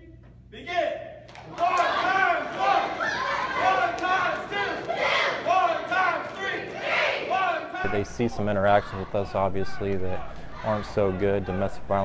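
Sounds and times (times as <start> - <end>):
children chanting in unison: 2.4 - 7.6.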